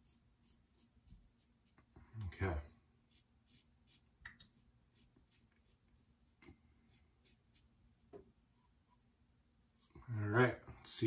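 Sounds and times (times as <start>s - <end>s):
razor scraping lathered skin: 3.1s - 6.0s.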